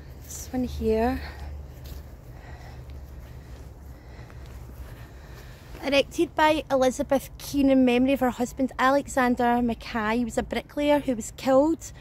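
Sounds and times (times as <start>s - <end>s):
steady low rumble: 0.0s - 10.4s
faint soft rustles and ticks: 0.2s - 6.1s.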